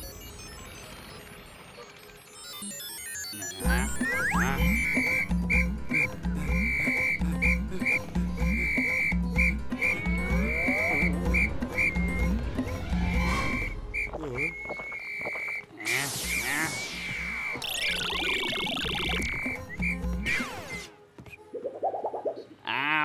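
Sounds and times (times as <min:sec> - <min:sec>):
high electronic beeping tone: 0:02.3 - 0:20.9.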